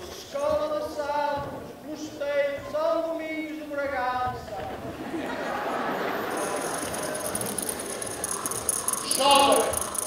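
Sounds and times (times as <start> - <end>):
tambourine jingles: 6.2 - 10.0.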